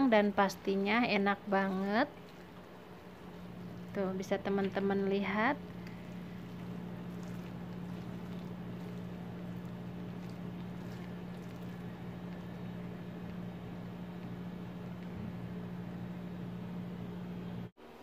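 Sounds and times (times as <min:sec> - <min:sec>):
low hum: 0:00.0 - 0:17.7.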